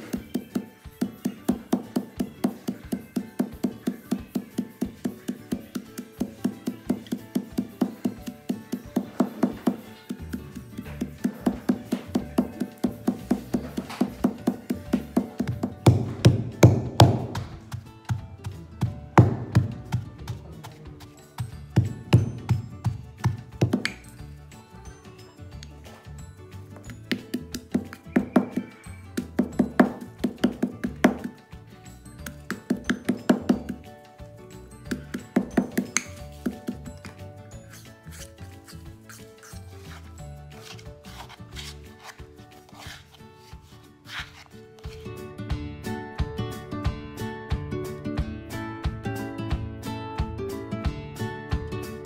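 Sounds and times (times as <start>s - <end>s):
stone pestle pounding in mortar: 0.0s - 24.2s, 26.9s - 31.4s, 32.2s - 34.0s, 34.8s - 37.2s
background music: 0.0s - 52.0s.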